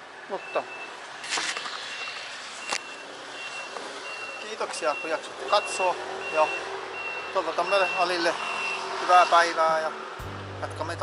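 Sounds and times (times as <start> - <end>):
street noise: 0.0 - 11.0
reversing alarm beeping: 1.9 - 8.9.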